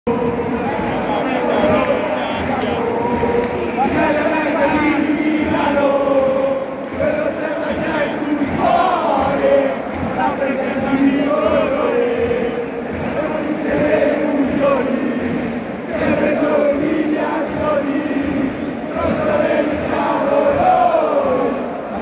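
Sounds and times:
stadium crowd singing and chanting: 0:00.1 - 0:22.0.

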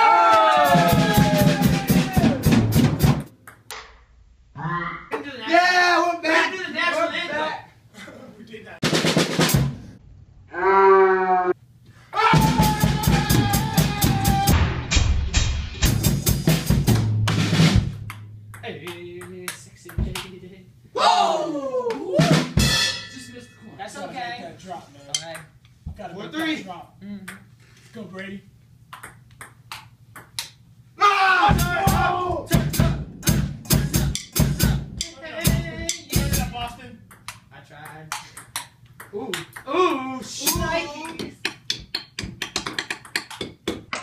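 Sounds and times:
drum hits: 0:00.6 - 0:03.3, 0:08.8 - 0:09.9, 0:12.3 - 0:19.1, 0:22.2 - 0:23.2, 0:31.4 - 0:36.7
table tennis ball clicking: 0:28.9 - 0:30.6, 0:37.1 - 0:39.7, 0:41.1 - 0:44.0.

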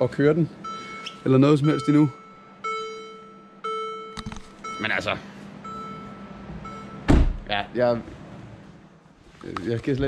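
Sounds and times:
car warning chime: 0:00.1 - 0:07.1.

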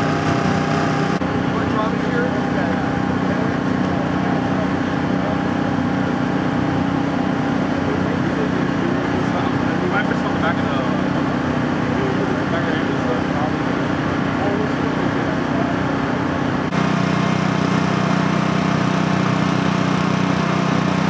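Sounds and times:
idling engine drone: 0:00.0 - 0:21.0.

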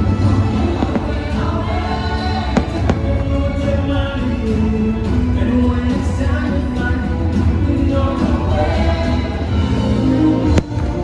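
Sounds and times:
choir music over loudspeakers: 0:00.0 - 0:11.0
firework bangs: 0:00.5 - 0:04.0.

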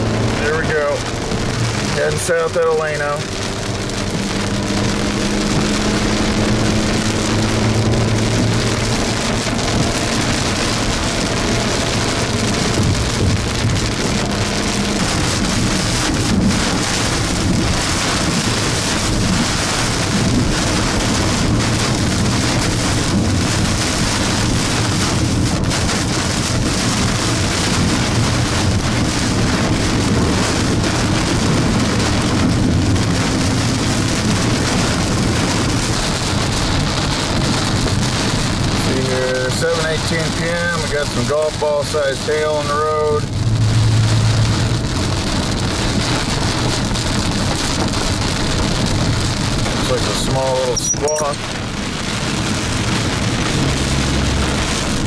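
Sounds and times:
car driving on wet road: 0:00.0 - 0:55.0
heavy rain on car: 0:00.0 - 0:55.0.

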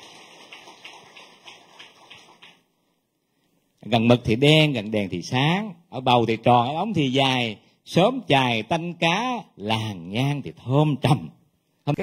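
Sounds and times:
audience applauding: 0:00.0 - 0:02.6.

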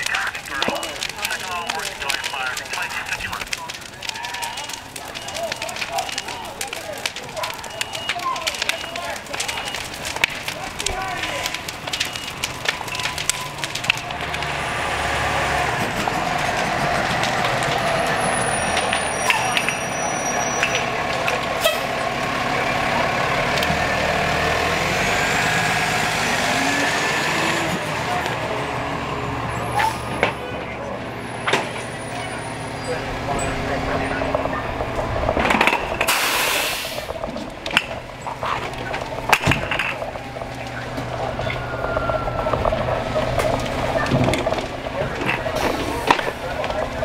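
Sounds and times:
background voices: 0:00.0 - 0:47.0
fire engine running: 0:00.0 - 0:47.0
air brakes hissing: 0:36.1 - 0:37.1.

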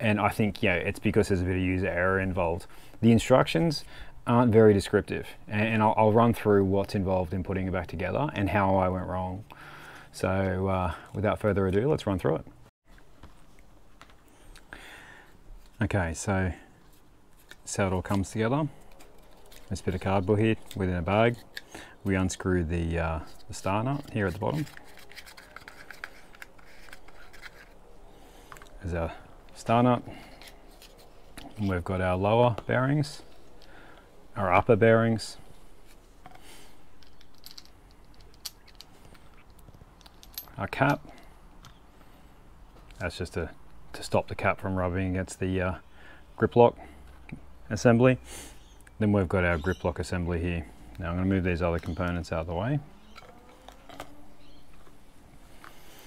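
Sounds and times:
small metal parts clicking: 0:37.0 - 0:41.0.

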